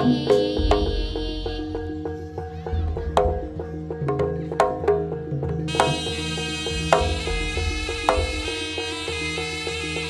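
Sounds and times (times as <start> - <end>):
drum strokes: 0.0 - 9.8
gamelan music: 0.0 - 10.0
deep bass: 2.7 - 3.8, 6.5 - 8.7.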